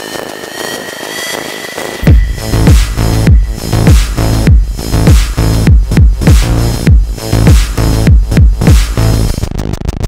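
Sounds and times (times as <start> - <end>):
thin high rising tone: 0.0 - 4.5
rushing whoosh: 0.0 - 5.3
bass-heavy electronic music: 0.0 - 10.0.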